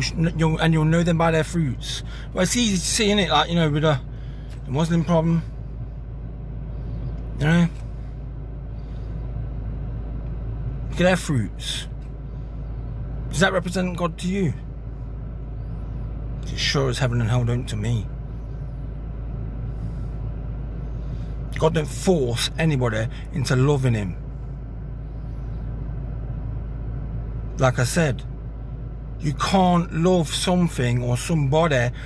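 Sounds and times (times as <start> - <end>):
low rumble in car cabin: 0.0 - 32.0.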